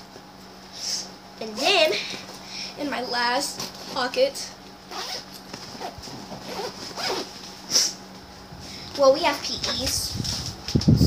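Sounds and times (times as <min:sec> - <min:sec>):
backpack zipper pulled open: 0:04.9 - 0:07.3.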